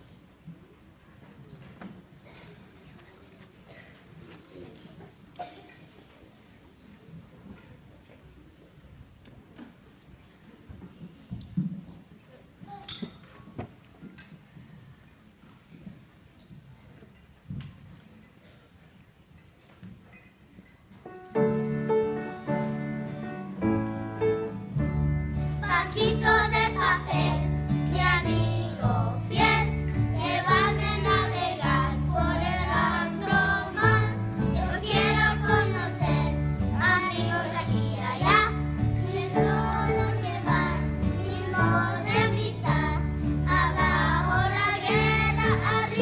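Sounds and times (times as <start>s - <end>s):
faint hall room noise: 0.0s - 46.0s
piano accompaniment: 21.1s - 46.0s
children's choir singing: 25.6s - 46.0s.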